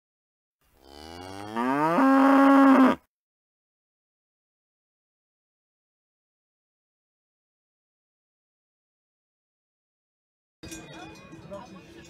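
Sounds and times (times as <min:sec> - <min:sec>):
cow mooing: 0:00.8 - 0:03.1.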